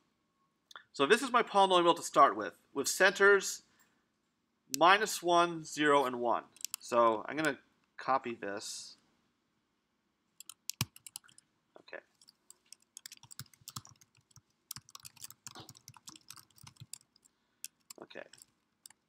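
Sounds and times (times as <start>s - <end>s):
computer keyboard key clicks: 10.4s - 11.4s, 12.2s - 19.0s.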